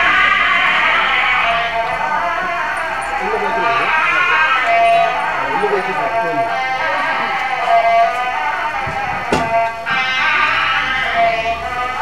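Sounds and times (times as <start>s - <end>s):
sharp knock: 8.9s - 9.6s.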